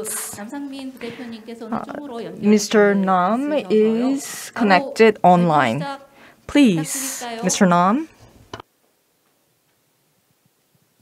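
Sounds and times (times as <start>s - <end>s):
person speaking: 0.0s - 8.2s.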